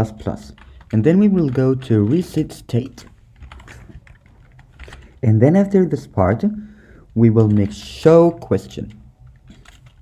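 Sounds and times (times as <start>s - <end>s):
faint keyboard keystrokes: 0.0s - 5.2s, 7.0s - 10.0s.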